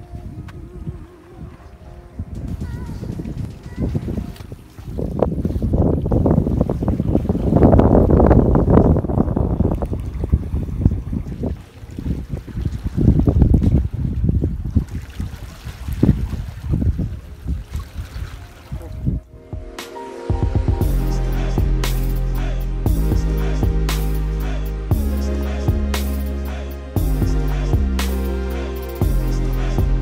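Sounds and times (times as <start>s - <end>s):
wind buffeting microphone: 0.0s - 20.9s.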